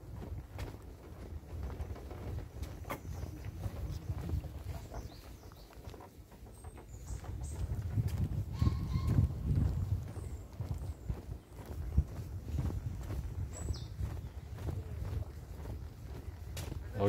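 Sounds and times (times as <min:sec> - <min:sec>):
footsteps on boardwalk: 0:00.0 - 0:17.0.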